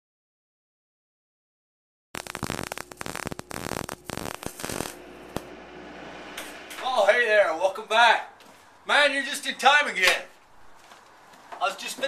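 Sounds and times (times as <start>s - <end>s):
welding arc crackling: 2.2s - 7.8s
faint background noise: 5.0s - 12.0s.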